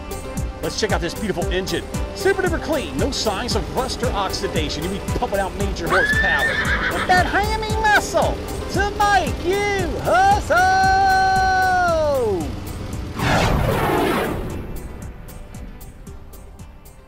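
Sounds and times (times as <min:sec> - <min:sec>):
background music: 0:00.0 - 0:17.0
horse whinnying: 0:05.9 - 0:07.3
short rushing noise: 0:13.1 - 0:15.8.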